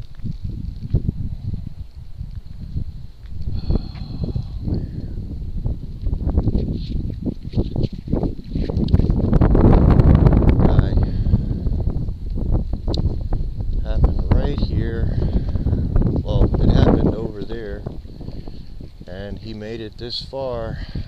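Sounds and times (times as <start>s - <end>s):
crackles: 0.0s - 5.2s
microphone handling rustle: 0.0s - 21.0s.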